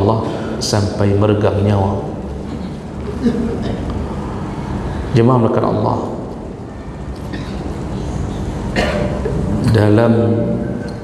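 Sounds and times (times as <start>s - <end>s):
low room rumble and hum: 0.0s - 11.0s.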